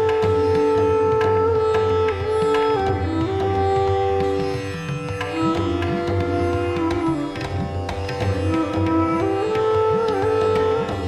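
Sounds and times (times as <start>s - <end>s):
plucked-string melody: 0.0s - 11.0s.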